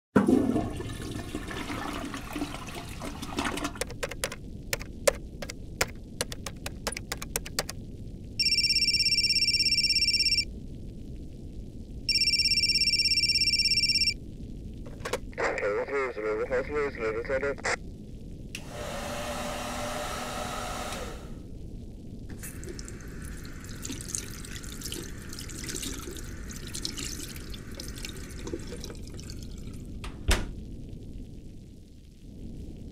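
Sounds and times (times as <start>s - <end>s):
crackling noise: 1.1s - 18.6s, 21.4s - 32.9s
sharp clicks: 3.8s - 7.8s
person speaking: 5.8s - 7.7s, 15.4s - 17.8s
telephone ringing: 8.4s - 10.5s, 12.1s - 14.2s.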